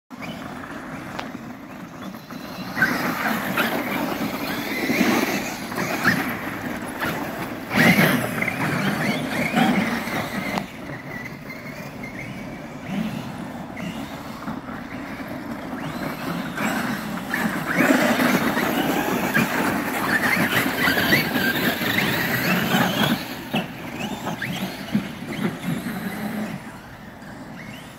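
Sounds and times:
tires churning snow: 0.1s - 27.9s
electric motors whining: 0.2s - 27.9s.

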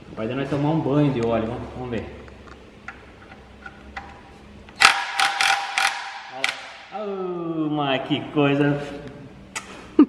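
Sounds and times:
impact wrench hammering: 4.7s - 6.9s.

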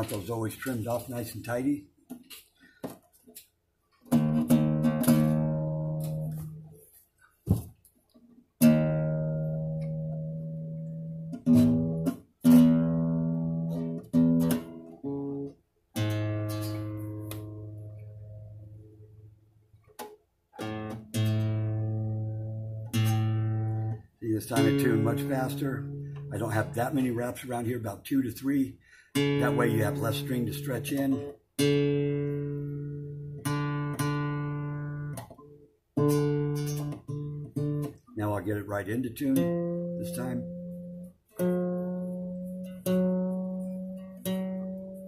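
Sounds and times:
classical guitar strings plucked: 3.9s - 6.8s, 7.5s - 27.7s, 29.2s - 45.0s.

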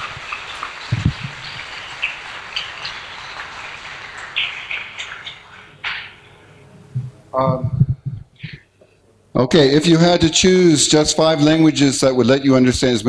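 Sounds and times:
audience applause: 0.0s - 6.2s.

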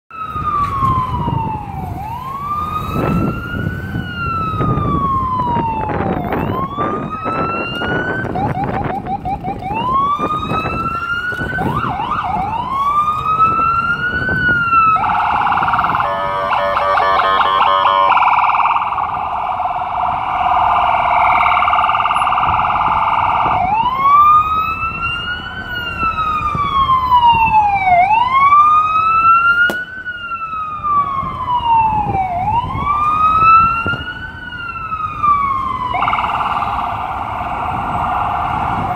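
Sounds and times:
ambulance siren wailing: 0.1s - 38.9s
idling city traffic: 0.2s - 38.9s.

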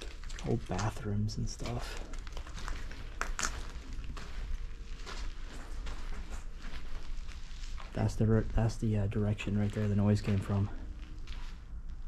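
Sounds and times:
footsteps on debris: 0.0s - 12.0s.

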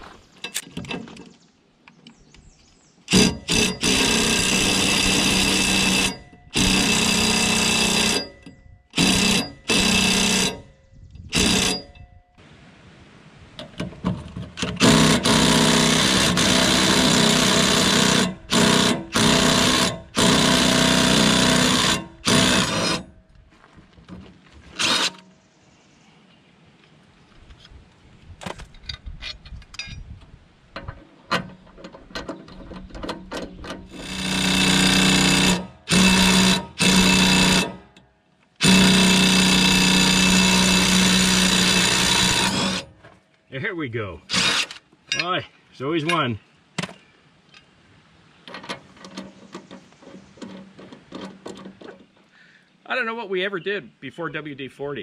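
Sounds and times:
impact wrench hammering: 3.1s - 10.7s, 11.4s - 12.0s, 14.6s - 23.1s, 33.6s - 37.9s.

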